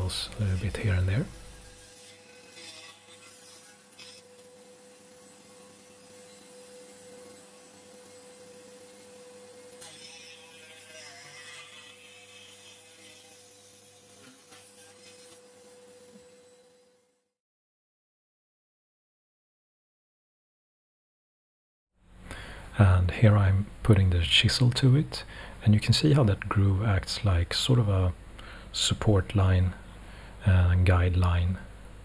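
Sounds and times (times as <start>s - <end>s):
cutting wheel biting wood: 0.0s - 17.1s
rotary tool whining: 0.0s - 17.3s.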